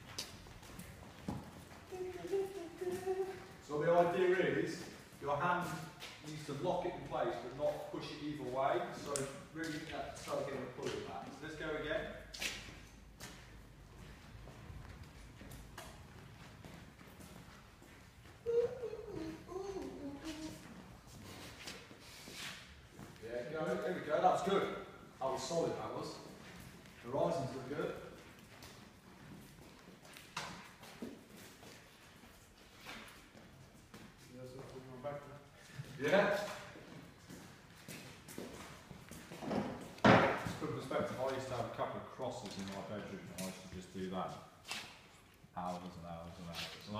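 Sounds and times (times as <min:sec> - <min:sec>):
person speaking: 0:01.9 - 0:12.1, 0:18.4 - 0:20.7.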